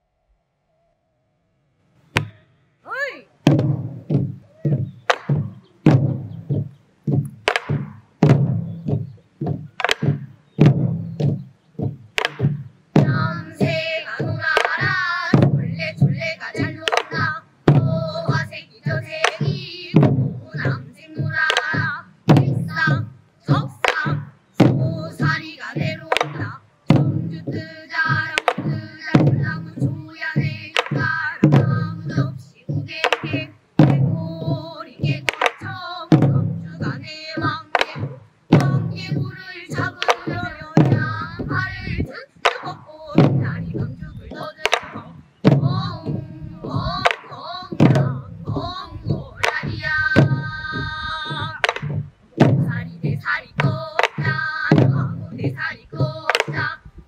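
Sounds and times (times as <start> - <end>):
barrel drums struck with sticks: 3.4 - 56.8
girls singing folk song in unison: 5.1 - 57.0.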